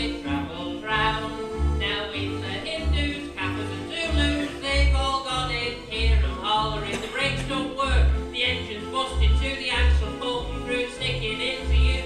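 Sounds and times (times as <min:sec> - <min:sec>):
live band playing comedy song: 0:00.0 - 0:12.0
low bass line: 0:00.0 - 0:12.0.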